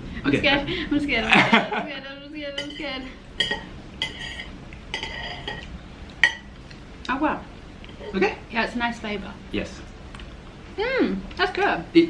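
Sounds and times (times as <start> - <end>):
cutlery clinking against dishes: 2.6 - 6.5.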